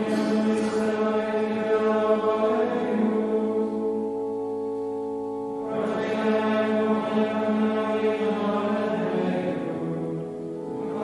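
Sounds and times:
men singing plainchant: 0.0s - 3.8s.

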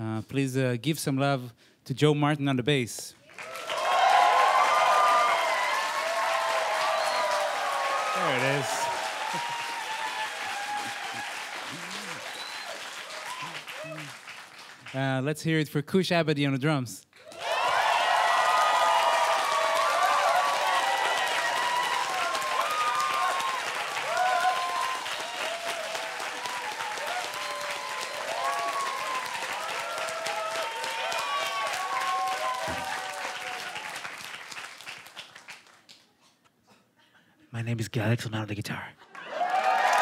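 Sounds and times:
audience applauding: 3.2s - 15.1s, 17.2s - 36.0s, 39.0s - 40.0s
voices calling out and cheering: 3.4s - 14.2s.

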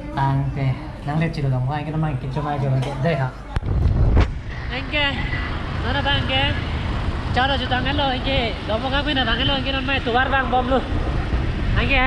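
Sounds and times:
wind and motorbike engine rumble: 3.5s - 12.0s.

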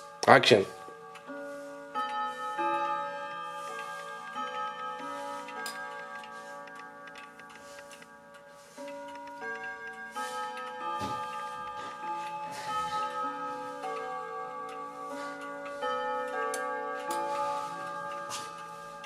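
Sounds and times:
clock ticking: 0.0s - 19.0s
wall clock chiming on tuned rods: 0.0s - 19.0s.

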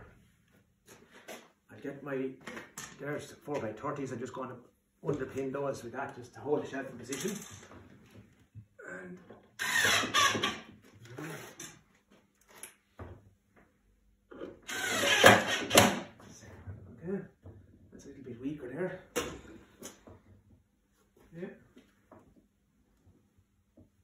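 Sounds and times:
cordless drill driving screws: 9.6s - 10.6s, 14.6s - 16.1s.

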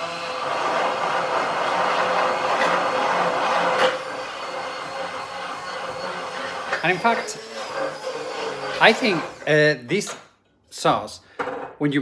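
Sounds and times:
immersion blender whirring: 0.0s - 9.6s.

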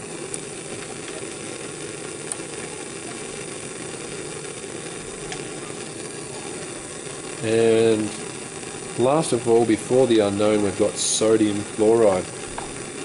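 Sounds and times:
bunsen burner gas hiss: 0.0s - 13.0s.

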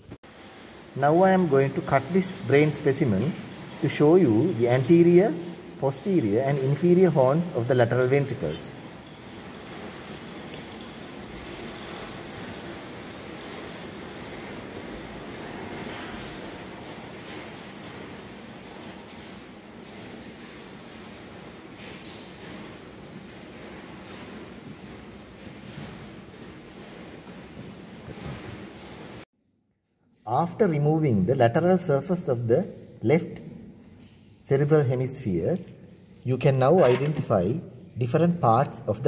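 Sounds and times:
hiss-like background noise: 0.0s - 29.2s.

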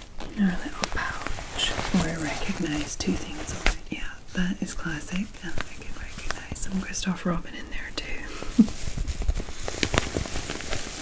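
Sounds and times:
fabric pouch rustling: 0.0s - 11.0s
small crackles and clicks: 0.0s - 11.0s.

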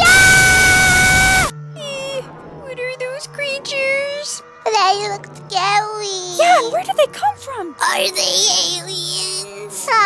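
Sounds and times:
person screaming: 0.0s - 1.5s.

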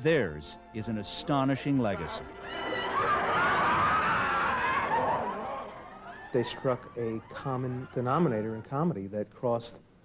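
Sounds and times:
audience laughter: 2.5s - 6.2s.

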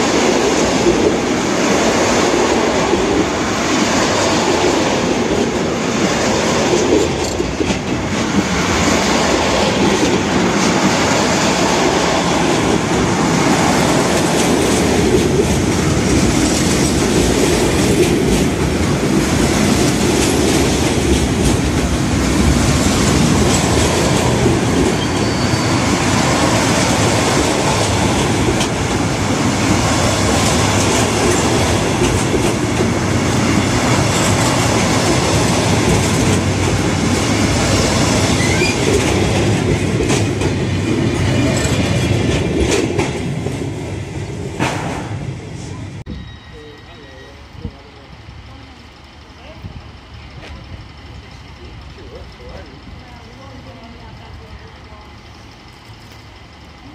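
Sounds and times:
train passing on rails: 0.0s - 56.9s
wheels knocking on rails: 4.4s - 43.7s.

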